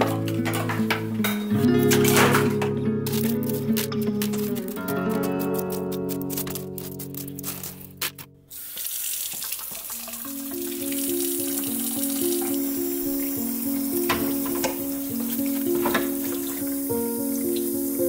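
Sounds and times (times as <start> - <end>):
faucet spray hissing into sink: 8.5 - 18.0.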